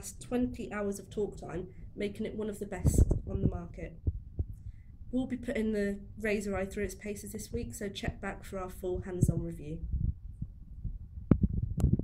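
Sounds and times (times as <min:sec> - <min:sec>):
microphone handling rumble: 0:02.7 - 0:04.7, 0:07.6 - 0:12.0.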